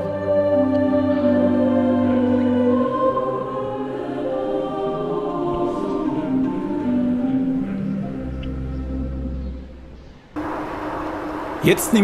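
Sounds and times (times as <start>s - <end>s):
choir singing sacred music: 0.0s - 9.7s.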